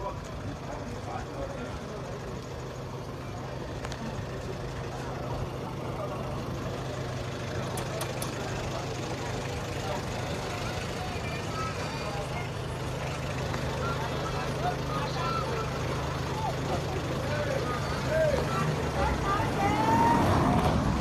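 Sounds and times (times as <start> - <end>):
distant voices: 0.0 - 21.0
low engine hum: 0.0 - 21.0.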